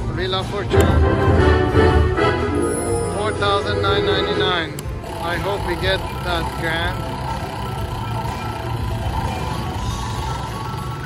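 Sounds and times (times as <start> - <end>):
slot machine music: 0.0 - 11.0.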